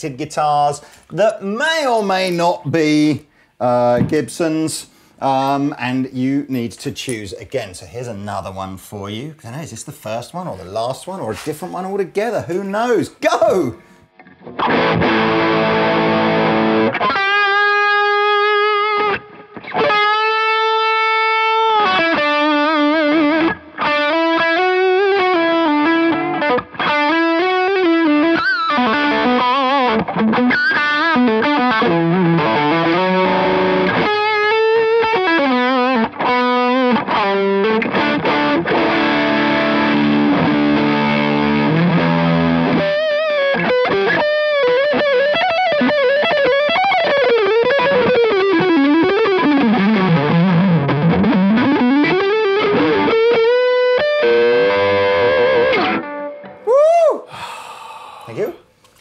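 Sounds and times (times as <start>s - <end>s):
distorted electric guitar lead: 14.2s - 56.7s.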